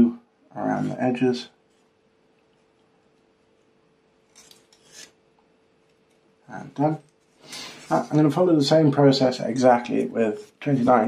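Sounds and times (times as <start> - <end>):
faint steady hum: 0.0 - 11.0
scratchy rubs on plastic mat: 9.8 - 11.0.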